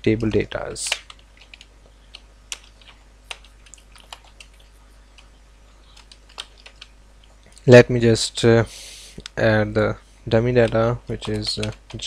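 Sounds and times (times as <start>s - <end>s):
keyboard keystrokes: 0.8s - 5.3s, 6.0s - 6.9s, 10.6s - 12.0s.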